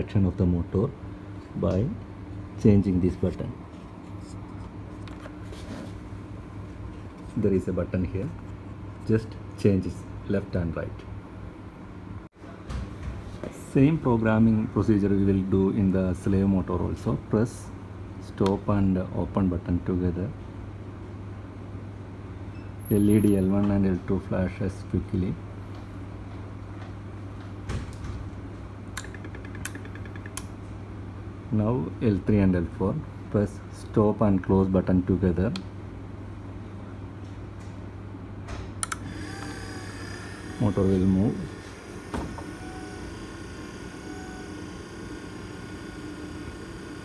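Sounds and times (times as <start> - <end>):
low machine hum: 0.0 - 47.0
sharp clicks: 29.0 - 30.5.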